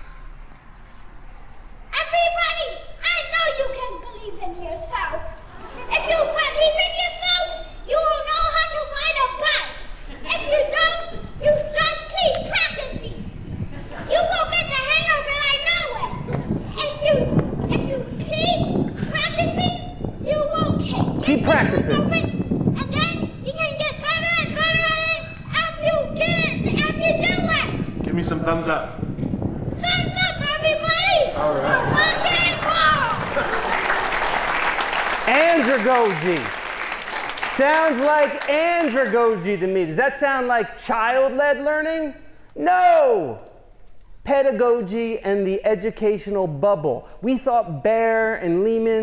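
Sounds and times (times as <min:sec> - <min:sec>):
small child talking: 0:01.9 - 0:13.3, 0:14.1 - 0:27.8, 0:29.7 - 0:33.3.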